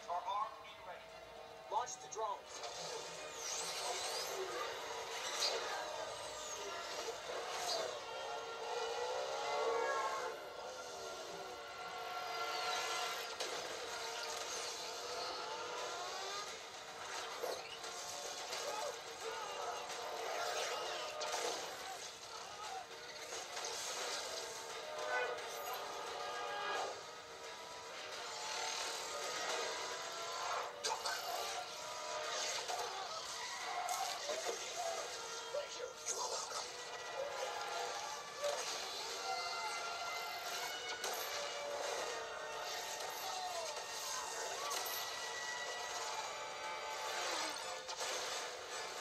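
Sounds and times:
film soundtrack through tv speaker: 0.0s - 49.0s
road noise: 4.4s - 39.3s.

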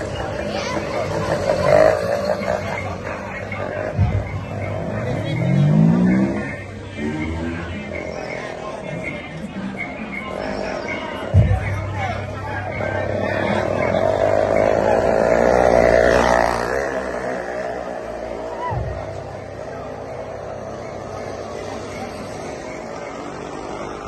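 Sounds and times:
vehicle engine passing: 0.0s - 8.8s, 12.1s - 24.0s.

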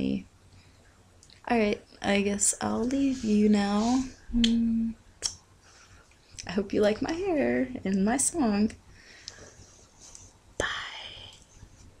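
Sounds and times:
woman whispering: 2.6s - 5.0s, 10.6s - 11.5s.

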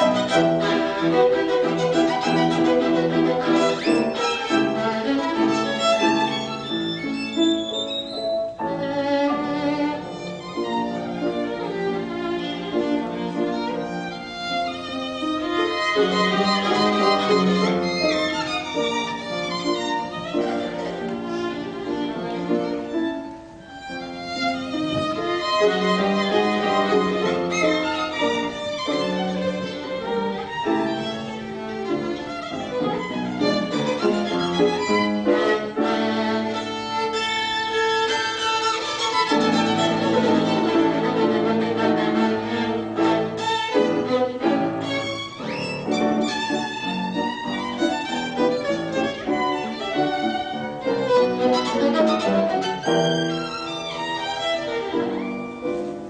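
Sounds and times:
piano accompaniment: 0.0s - 56.0s
violin playing classical music: 0.0s - 56.0s.

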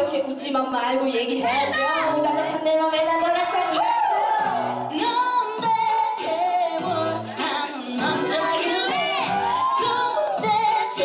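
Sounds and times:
women singing into microphones: 1.6s - 11.0s
music with stepping bass line: 4.5s - 11.0s.

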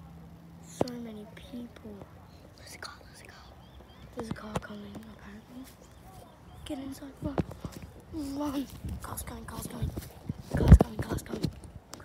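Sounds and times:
whispered voices: 0.0s - 12.0s.

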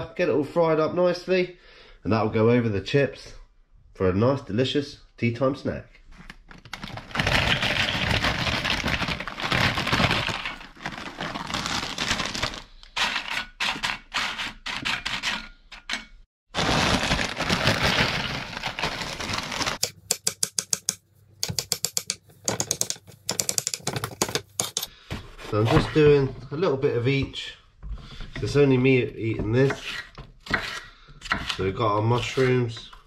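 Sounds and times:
foil bag crinkling: 6.6s - 12.8s, 16.5s - 19.8s
knife chopping on wooden board: 19.8s - 24.9s.

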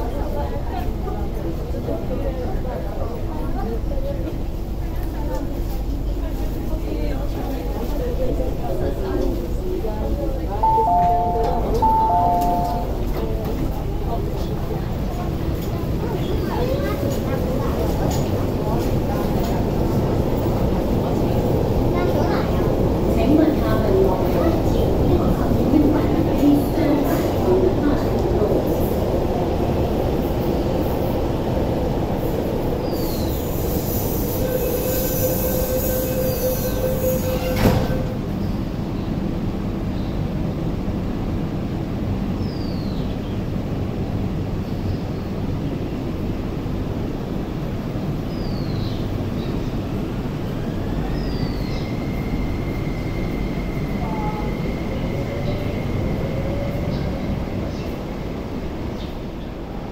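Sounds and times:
high train whine: 0.0s - 42.4s, 49.0s - 59.9s
train wheels and motors rumbling: 0.0s - 59.9s
train wheels squealing: 32.8s - 38.4s, 50.6s - 58.1s.

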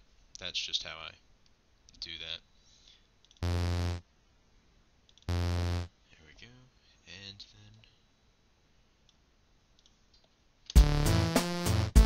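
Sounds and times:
synthesizer and drum machine track: 3.4s - 4.0s, 5.3s - 5.9s, 10.8s - 12.0s
faint mouse clicks: 9.0s - 10.4s.

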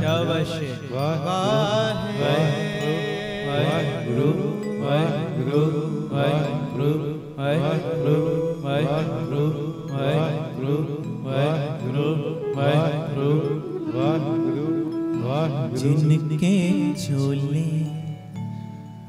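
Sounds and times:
male voices chanting: 0.0s - 17.3s.

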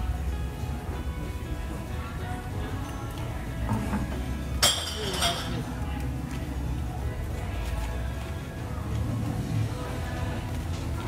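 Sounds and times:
murmur of restaurant: 0.0s - 11.0s
tableware clinking: 3.6s - 5.8s.

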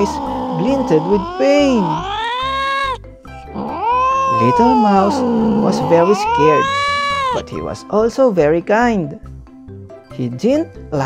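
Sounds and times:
cat meowing: 0.0s - 7.7s.

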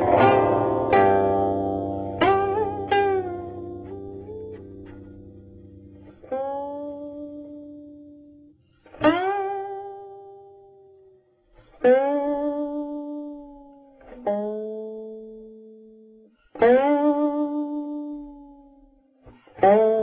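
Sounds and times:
plucked zither notes: 0.0s - 18.8s, 19.4s - 20.0s.

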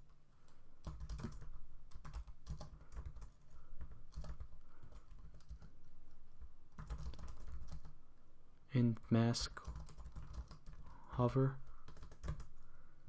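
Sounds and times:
typing on computer keyboard: 0.8s - 5.8s, 6.7s - 8.0s, 9.6s - 10.9s, 11.8s - 12.5s.

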